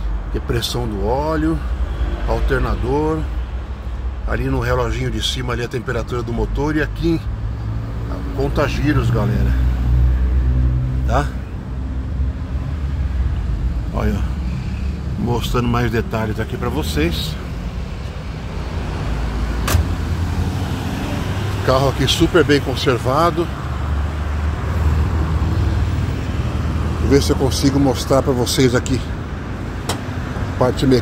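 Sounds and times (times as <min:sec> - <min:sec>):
vehicle engine rumbling: 0:00.0 - 0:31.0.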